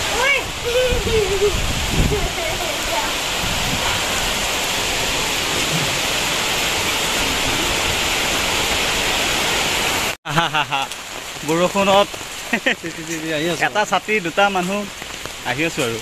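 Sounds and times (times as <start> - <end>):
heavy rain: 0.0 - 16.0.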